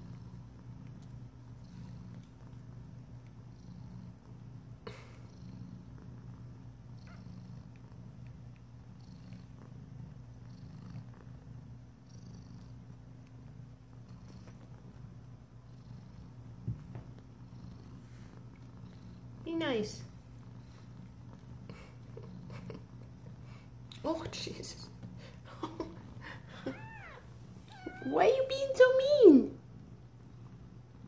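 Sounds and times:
cat purring: 0.0 - 31.0.

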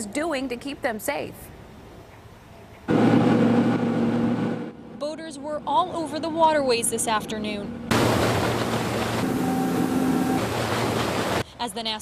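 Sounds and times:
motorboat engine hum: 2.9 - 11.4
water spraying off hull: 7.9 - 11.4.

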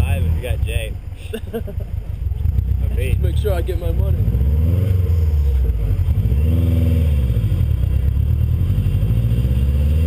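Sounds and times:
steady low rumble: 0.0 - 9.3
man laughing: 1.2 - 2.0.

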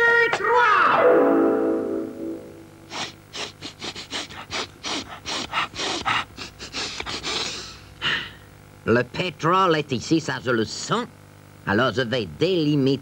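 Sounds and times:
rapid sniffing: 2.9 - 8.2.

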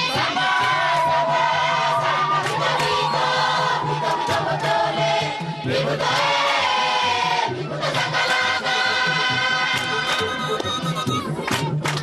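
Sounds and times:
choir singing long notes: 0.0 - 11.3.

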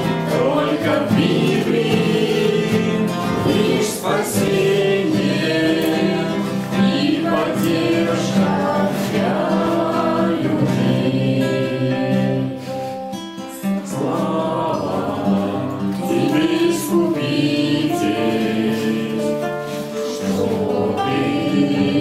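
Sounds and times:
group singing a hymn: 0.0 - 22.0.

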